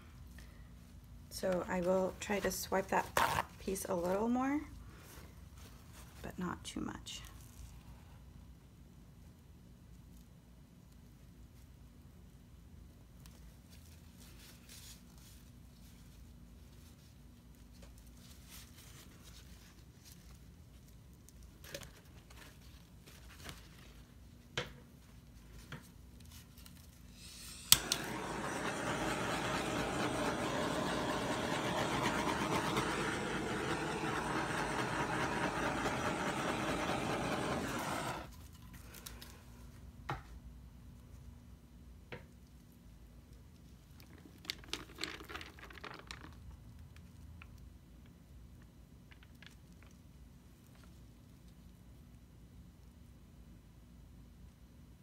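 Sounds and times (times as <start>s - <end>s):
gas torch hissing: 27.2s - 38.3s
gas torch clicking alight: 27.5s - 38.3s.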